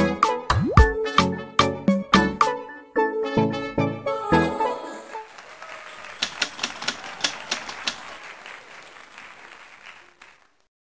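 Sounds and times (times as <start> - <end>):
typewriter key clacks: 6.2 - 8.1.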